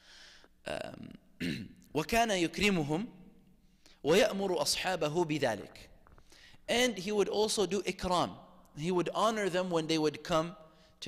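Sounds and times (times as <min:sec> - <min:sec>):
man clearing throat: 0:00.7 - 0:01.8
man speaking: 0:01.9 - 0:03.2, 0:04.0 - 0:05.9, 0:06.7 - 0:10.6
man breathing into microphone: 0:06.1 - 0:06.7.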